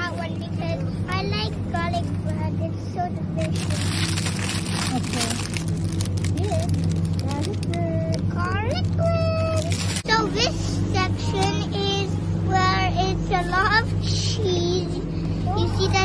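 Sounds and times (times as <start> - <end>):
steady low hum: 0.0 - 16.0
plastic packaging rustling: 3.4 - 7.8, 9.6 - 10.1
child's voice babbling: 7.3 - 12.1.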